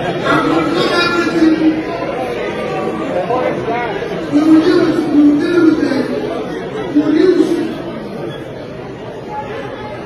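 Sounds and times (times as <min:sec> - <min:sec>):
amplified voice in a hall: 0:00.0 - 0:08.3
audience chatter: 0:00.0 - 0:10.0.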